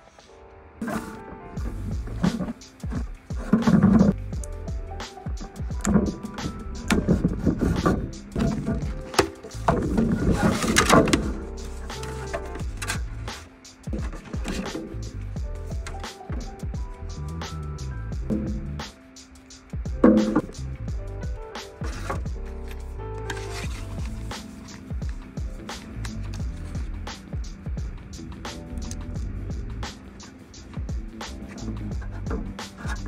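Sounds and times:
background music with bass: 0.8 - 33.0
hands handling cardboard box: 5.8 - 13.4, 21.8 - 25.1
foam packing insert handling: 7.0 - 13.0, 23.3 - 24.9.

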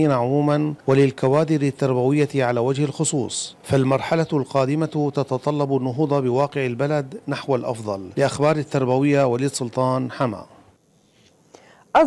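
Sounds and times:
man speaking: 0.0 - 10.6.

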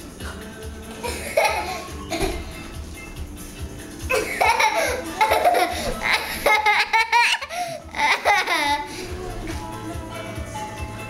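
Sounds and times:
young child laughing: 1.0 - 2.4, 4.1 - 8.9.

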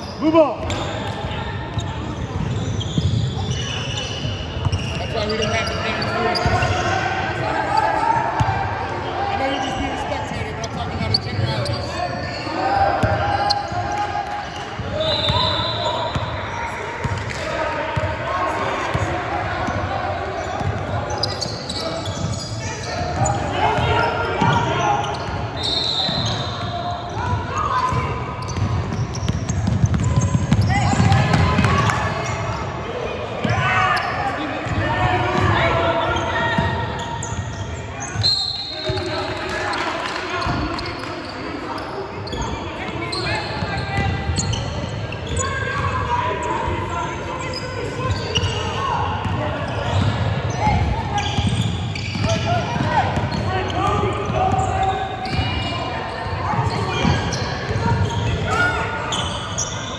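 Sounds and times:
players and spectators calling out: 0.0 - 59.9.

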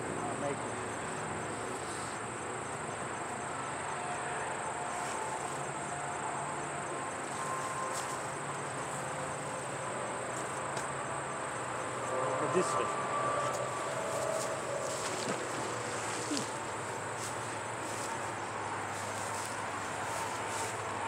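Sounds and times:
crickets trilling: 0.0 - 21.0.

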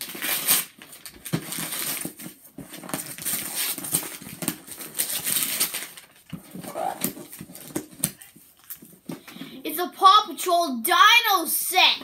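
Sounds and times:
cardboard packaging being torn: 0.0 - 8.8.

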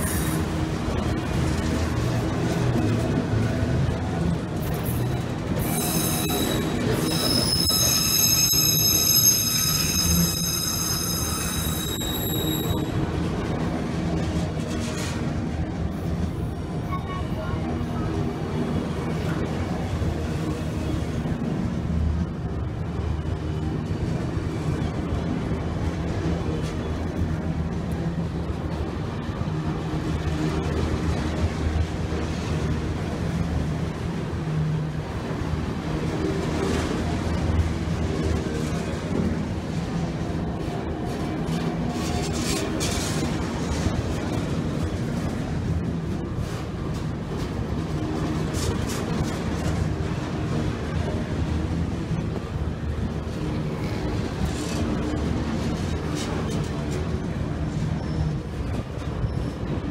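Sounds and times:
train wheels rumbling and rattling: 0.0 - 59.9
high-pitched wheel squeal: 5.6 - 13.0.

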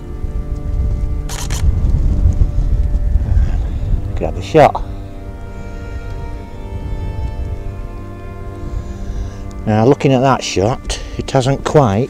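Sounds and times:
wind rumbling on microphone: 0.0 - 12.0
camera shutter clicks: 1.3 - 1.7.

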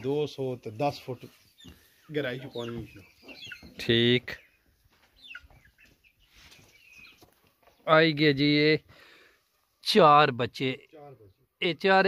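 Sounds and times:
chickens clucking: 0.0 - 9.8
faint bird chirps: 1.0 - 7.9.

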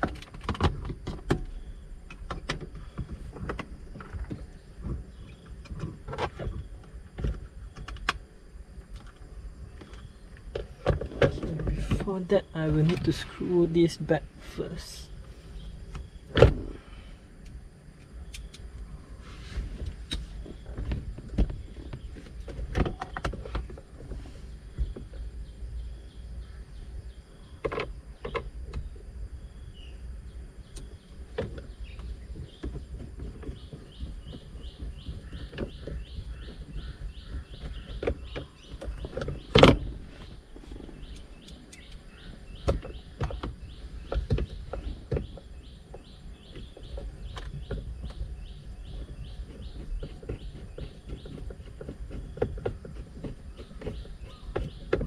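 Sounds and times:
bird chirping: 9.6 - 17.2, 24.6 - 55.0.

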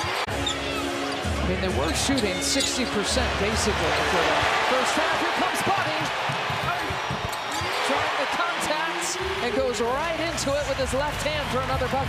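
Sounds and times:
sneaker squeaks: 0.0 - 3.0, 6.2 - 8.2
arena noise: 0.0 - 12.0
basketball bouncing on hardwood: 5.7 - 7.8.

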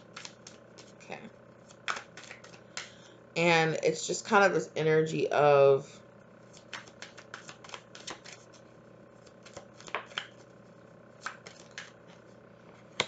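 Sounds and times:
cards being shuffled: 0.0 - 3.1, 6.5 - 13.0.

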